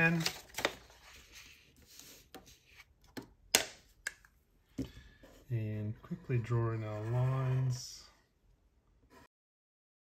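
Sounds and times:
paper sheets rustling: 0.0 - 2.6.

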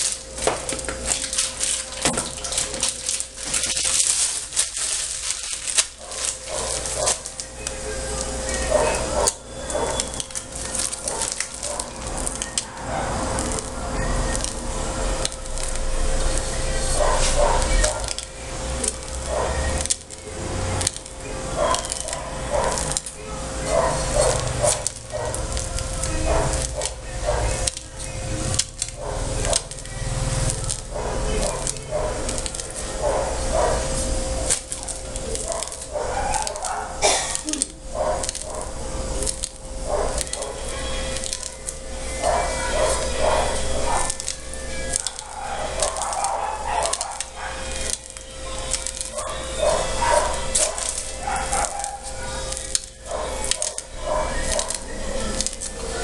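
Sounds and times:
steady hum: 0.0 - 56.0.

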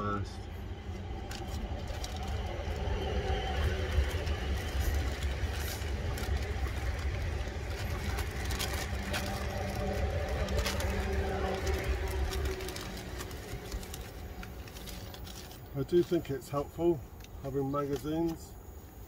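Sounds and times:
steady low rumble: 0.0 - 17.9
plastic wrapper crinkling and tearing: 0.9 - 18.4.

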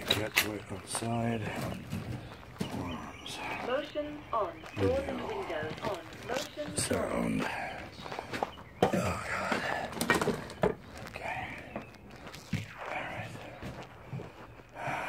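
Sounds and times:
footsteps: 0.0 - 15.0.

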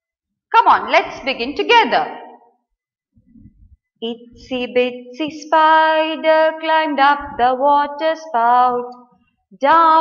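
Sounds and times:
woman's voice: 0.6 - 2.3, 4.0 - 9.0.

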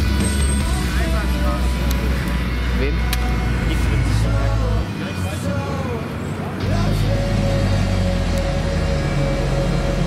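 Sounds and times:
car engines rumbling in traffic: 0.0 - 10.0
passers-by voices: 0.0 - 10.0.

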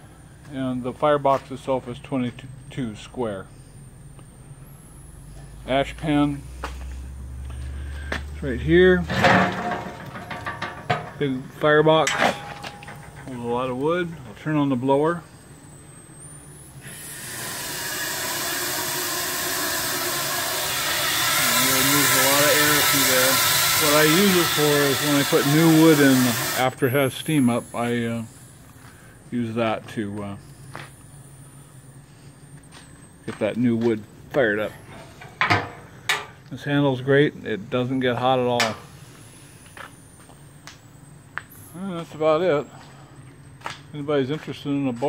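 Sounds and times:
boiler blower rushing: 0.0 - 45.0
metal drawer scraping: 9.0 - 11.3.

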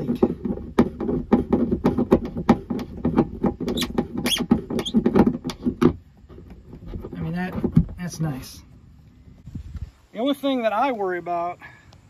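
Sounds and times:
screws creaking through plastic: 2.8 - 5.8.

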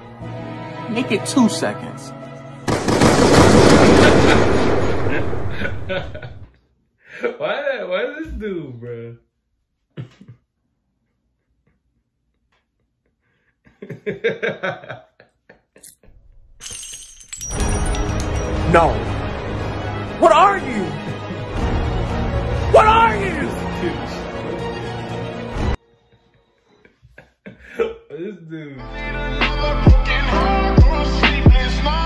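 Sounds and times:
low background music: 0.0 - 3.8, 17.5 - 25.8, 28.8 - 32.0
rapid gunfire: 2.7 - 5.5
glass shattering: 15.8 - 18.8.

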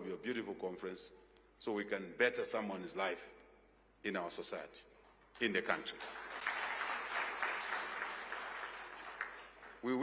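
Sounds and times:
audience applause: 6.0 - 10.0.

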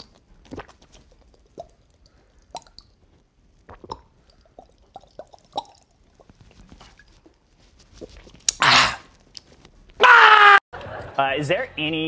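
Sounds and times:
man gulping and swallowing: 0.0 - 9.5
man wailing: 10.0 - 10.6.

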